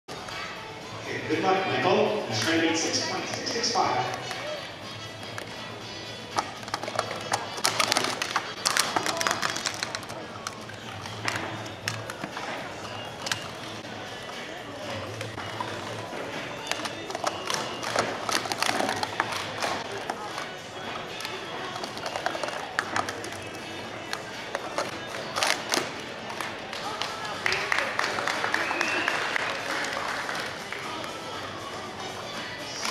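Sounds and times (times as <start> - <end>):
background music: 0.1 - 32.9
voices: 0.2 - 7.6
plastic cups clattering: 2.4 - 27.0.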